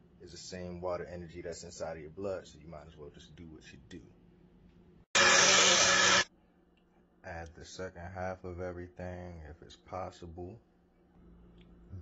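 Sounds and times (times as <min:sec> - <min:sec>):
blender motor whirring: 0:05.2 - 0:06.3.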